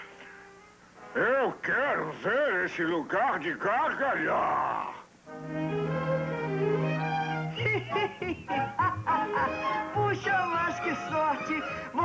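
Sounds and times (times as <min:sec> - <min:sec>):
sustained string chord: 0:05.3 - 0:07.8.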